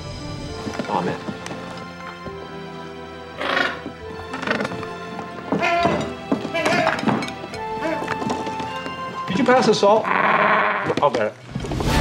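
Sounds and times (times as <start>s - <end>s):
background music: 0.0s - 12.0s
penguin squawking: 3.3s - 8.5s, 10.0s - 11.0s.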